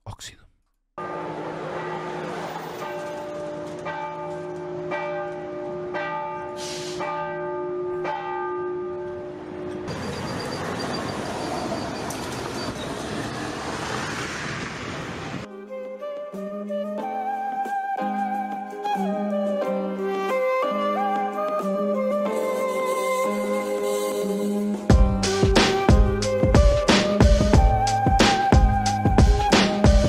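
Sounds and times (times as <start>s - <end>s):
bells ringing: 1.0s - 13.0s.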